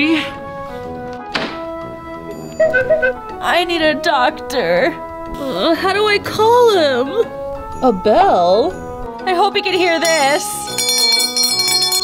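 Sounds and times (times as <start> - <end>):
background music: 0.0 - 12.0
sharp thunk: 1.3 - 1.6.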